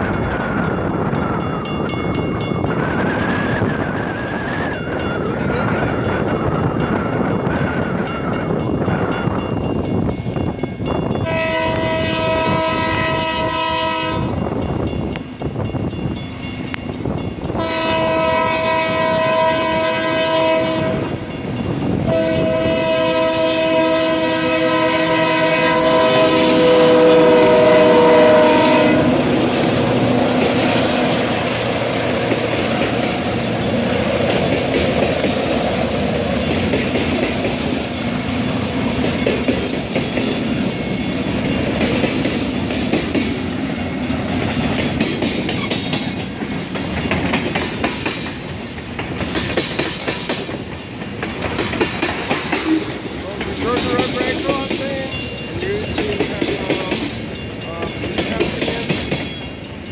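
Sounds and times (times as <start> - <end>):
locomotive air horn: 11.2 - 14.4, 17.6 - 21.3, 22.1 - 29.5
freight cars rumbling and clacking: 28.8 - 59.9.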